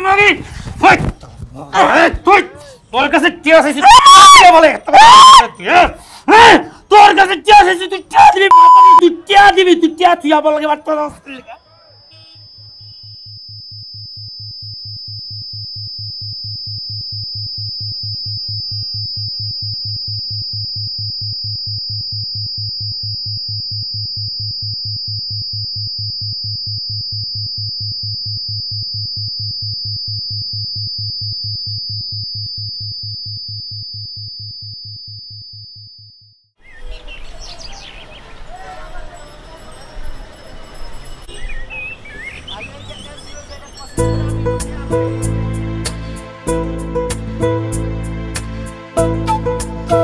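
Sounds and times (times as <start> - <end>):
high sustained synth tone: 12.0 - 33.7
pulsing bass beat: 12.6 - 34.6, 44.0 - 50.0
birds chirping: 36.6 - 44.4
electronic music with pulsing beat: 44.0 - 50.0.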